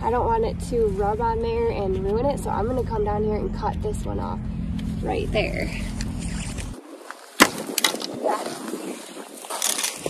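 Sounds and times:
stem snapping crack: 0:07.4 - 0:08.2.

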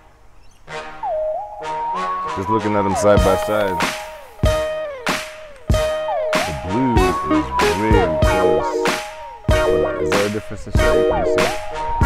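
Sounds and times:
thin held melody line: 0:05.7 - 0:12.0
ringing chords: 0:05.8 - 0:11.8.

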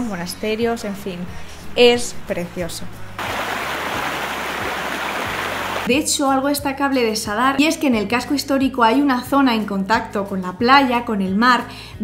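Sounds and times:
waterfall rushing: 0:03.2 - 0:05.9.

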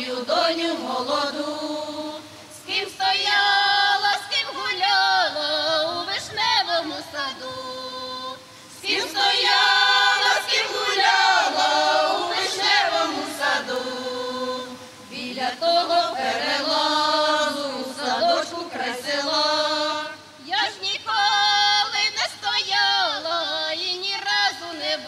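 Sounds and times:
women's folk choir singing: 0:00.0 - 0:25.0.

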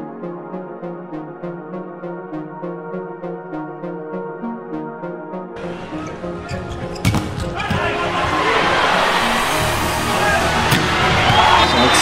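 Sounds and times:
arena crowd noise: 0:05.6 - 0:12.0
volleyball strike: 0:07.0 - 0:07.9, 0:10.7 - 0:11.6
synth music phrase: 0:08.7 - 0:12.0.

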